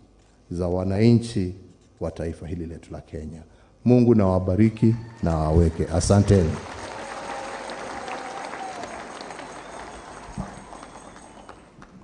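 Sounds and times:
crowd applauding: 5.0s - 12.0s.

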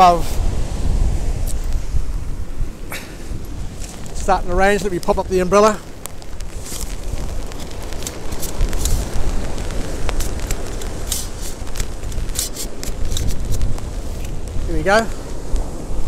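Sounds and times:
wind rumbling on microphone: 0.0s - 16.0s
umbrella fabric rustling: 3.5s - 15.7s
umbrella frame clicks: 5.8s - 14.5s.

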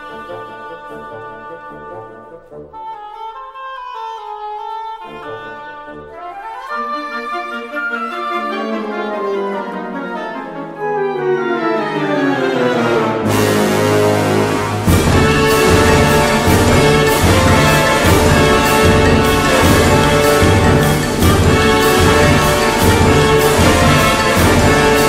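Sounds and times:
concert band brass and woodwind chords: 0.0s - 25.0s.

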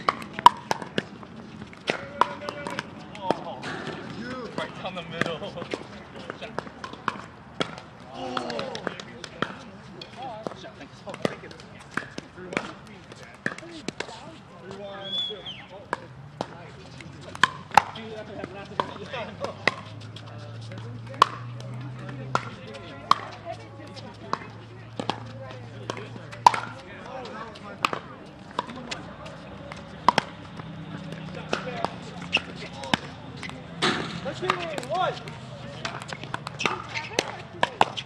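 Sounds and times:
paddles hitting plastic ball: 0.0s - 14.1s, 15.9s - 20.0s, 20.6s - 38.0s
ball bouncing on court: 0.0s - 14.2s, 15.8s - 38.0s
players' voices: 0.0s - 38.0s.

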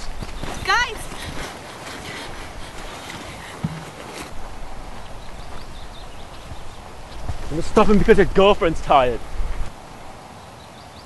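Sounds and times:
footsteps in long grass: 0.0s - 7.6s
grass rustling: 0.0s - 10.5s
wind rumble on microphone: 4.3s - 10.1s.

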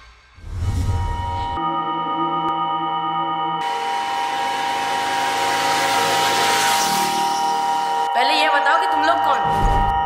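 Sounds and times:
steady droning tones: 3.2s - 9.4s.

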